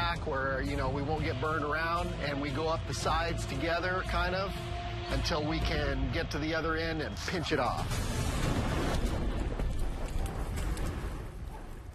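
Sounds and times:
fire rumbling and crackling: 0:05.3 - 0:11.9.

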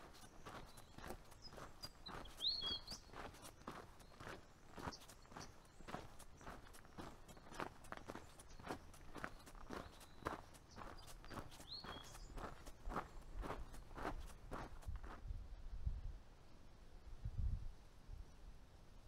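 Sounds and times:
bird chirping: 0:00.0 - 0:14.7
footsteps on gravel trail: 0:00.0 - 0:15.2.

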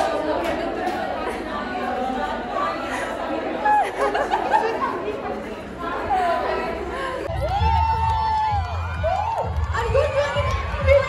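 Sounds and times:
chatter of many people: 0:00.0 - 0:08.1.

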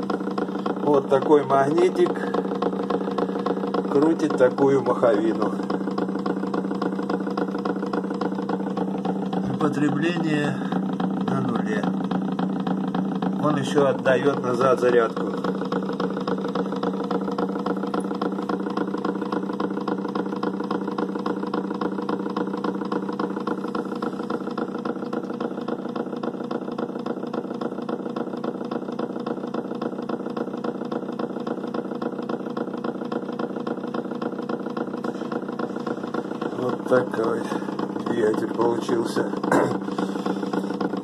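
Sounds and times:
motor humming with fast pulsing: 0:00.0 - 0:41.0.

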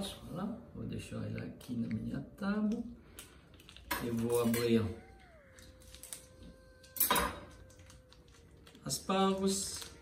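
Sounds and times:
food packet crinkling: 0:03.2 - 0:10.0
packet tearing rustle: 0:03.6 - 0:10.0.

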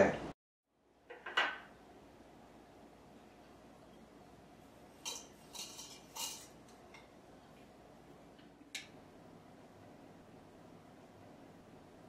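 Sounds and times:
tea leaves scraping on porcelain: 0:05.0 - 0:07.1.

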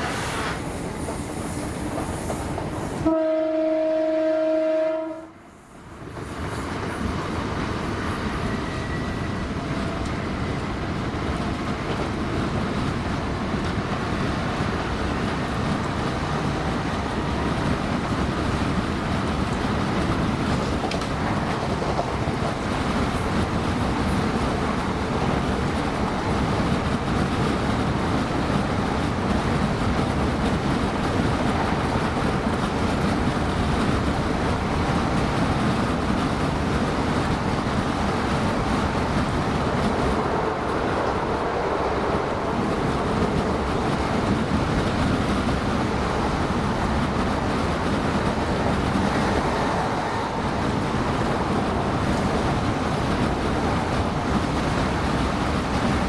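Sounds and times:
train running on rails: 0:00.0 - 0:56.0
train horn: 0:03.0 - 0:05.5.

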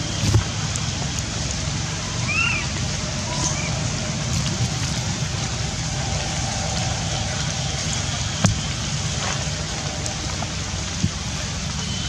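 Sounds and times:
low rumble: 0:00.0 - 0:12.0
rain on leaves and ground: 0:00.0 - 0:12.0.

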